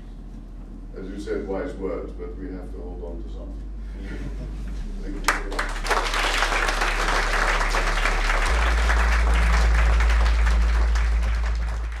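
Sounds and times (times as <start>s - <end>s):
low hum: 0.0s - 12.0s
audience applauding: 5.2s - 12.0s.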